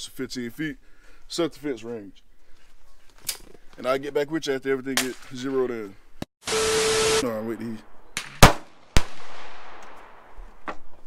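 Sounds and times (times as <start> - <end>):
gunshots: 6.5 - 10.4.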